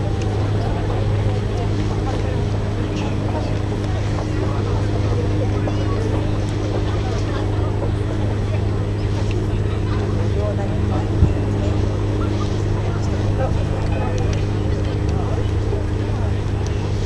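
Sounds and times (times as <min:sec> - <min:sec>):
boat engine drone: 0:00.0 - 0:17.0
faint voices: 0:00.0 - 0:17.0.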